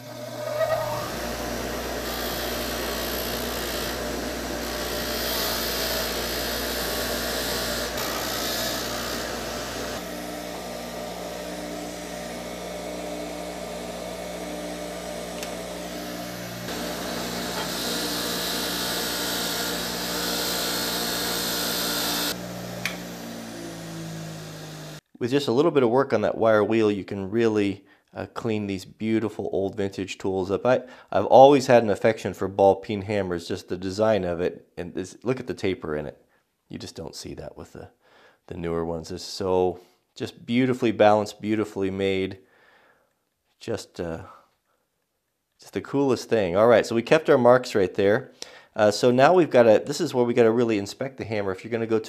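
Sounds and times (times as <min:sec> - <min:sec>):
bench grinder motor hum: 0:00.0 - 0:25.0
wire brush scrubbing steel: 0:14.2 - 0:22.4.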